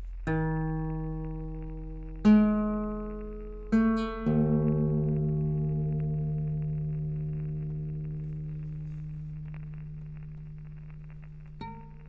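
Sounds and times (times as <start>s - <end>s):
slow plucked guitar: 0.0s - 12.0s
steady low hum: 0.0s - 12.0s.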